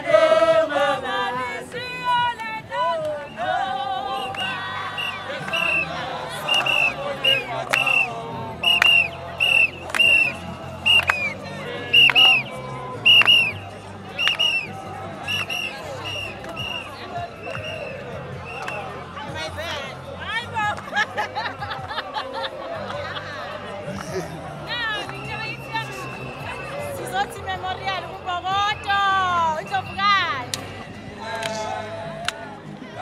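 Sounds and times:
women singing together: 0:00.0 - 0:23.5
crowd voices: 0:00.0 - 0:33.0.

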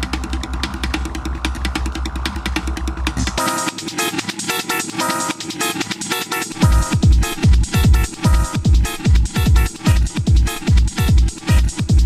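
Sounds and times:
rapid hi-hat ticks: 0:00.0 - 0:12.0
heavy bass pulse: 0:06.5 - 0:12.0.

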